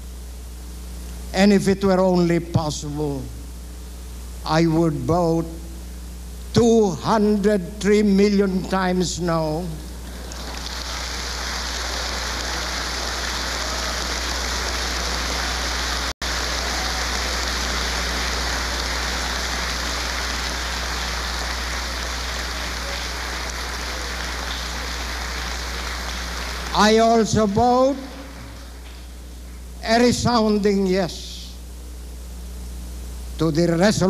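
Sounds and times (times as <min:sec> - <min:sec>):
large crowd applauding: 0:10.0 - 0:29.1.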